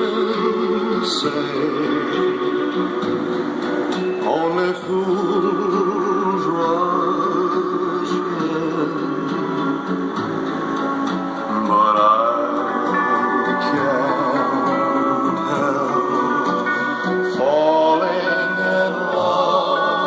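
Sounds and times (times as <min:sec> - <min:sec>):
song with guitar and singing: 0:00.0 - 0:20.0.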